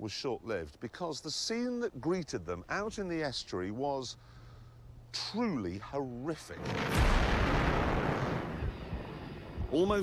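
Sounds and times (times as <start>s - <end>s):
explosion with rumbling roar: 6.5s - 9.7s.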